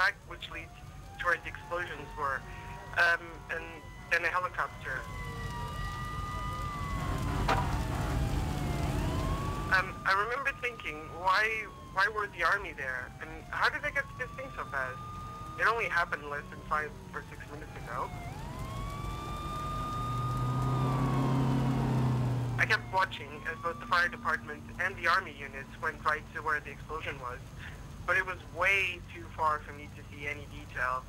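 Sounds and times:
siren wailing: 0.0s - 31.0s
low rumble: 4.8s - 12.1s.

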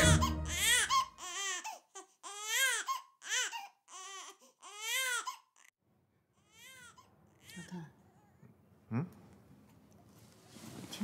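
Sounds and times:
newborn baby crying: 0.0s - 5.8s, 6.4s - 8.3s.

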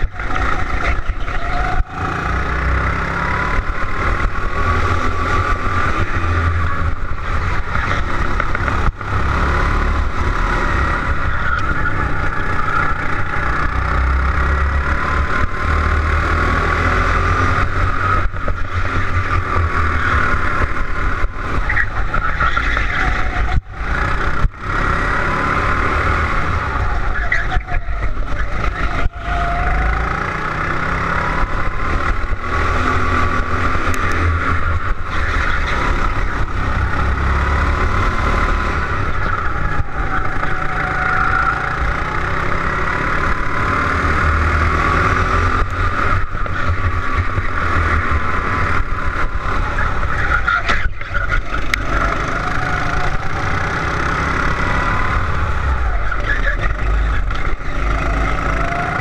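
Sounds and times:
go-kart engine revving: 0.0s - 59.0s.

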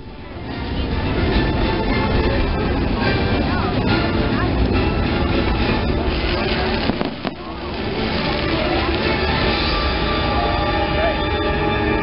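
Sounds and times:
fireworks bursts: 6.0s - 10.2s
sharp crack: 6.1s - 9.9s.

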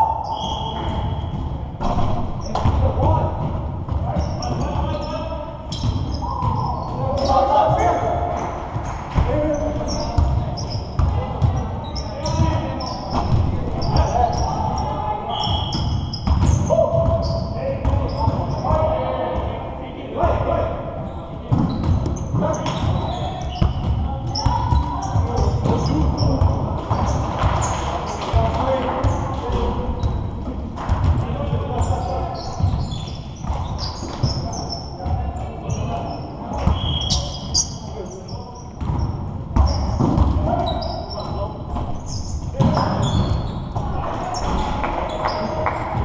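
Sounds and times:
sneakers squeaking: 0.0s - 19.0s, 20.2s - 46.0s.

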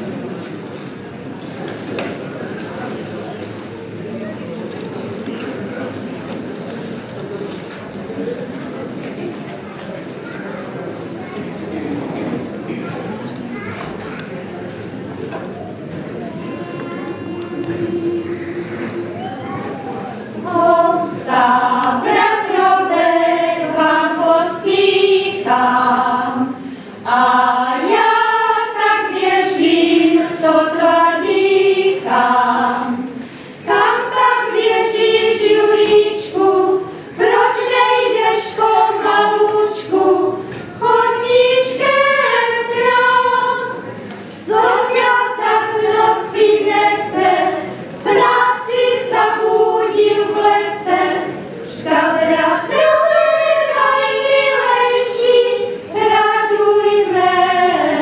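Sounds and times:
women's choir singing unaccompanied: 14.5s - 58.0s.

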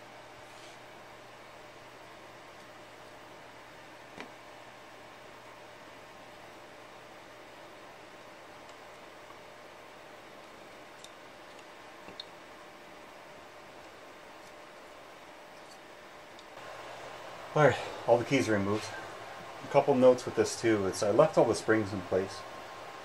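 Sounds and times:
low hiss and hum: 0.0s - 23.0s.

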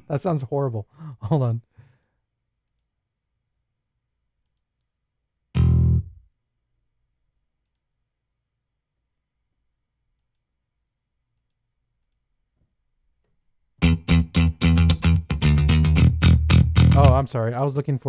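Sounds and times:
plucked electric bass notes: 5.6s - 6.3s, 13.8s - 17.3s.

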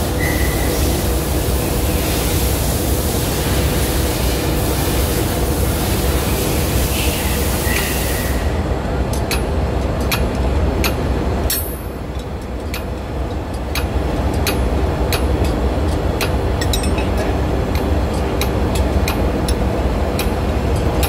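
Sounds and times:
engine-room machinery drone: 0.0s - 21.0s
ring spanner clicking: 9.1s - 21.0s.

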